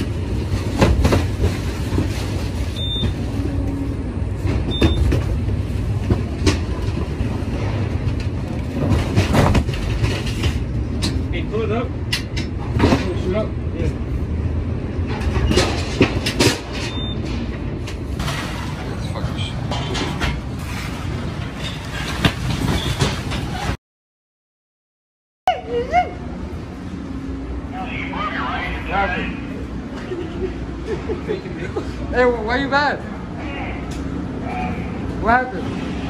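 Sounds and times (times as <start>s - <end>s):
parcels knocking and thudding: 0.7s - 2.2s, 8.7s - 10.6s
low machine rumble: 25.5s - 36.0s.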